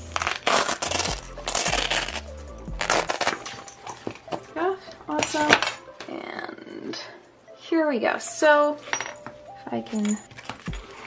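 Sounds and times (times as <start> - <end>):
bag rustling: 0.2 - 4.6
metal hardware clinking: 8.8 - 10.5.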